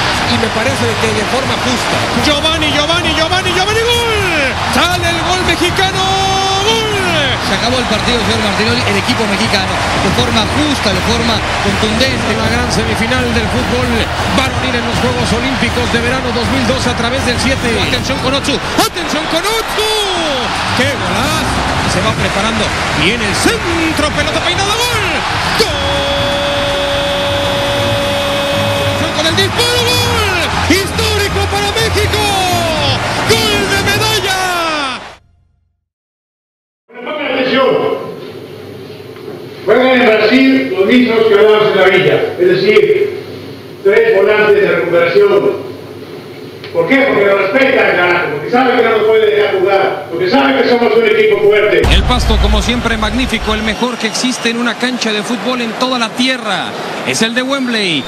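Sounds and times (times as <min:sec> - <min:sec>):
stadium crowd roar: 0:00.0 - 0:35.2, 0:50.6 - 0:58.0
music: 0:00.0 - 0:35.8, 0:51.4 - 0:54.6
commentator shouting excitedly: 0:23.6 - 0:35.1.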